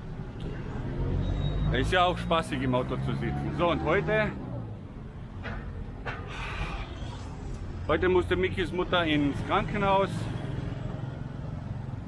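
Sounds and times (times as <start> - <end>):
road traffic rumble: 0.0 - 12.0
vehicle passing on street: 0.1 - 6.0, 6.6 - 12.0.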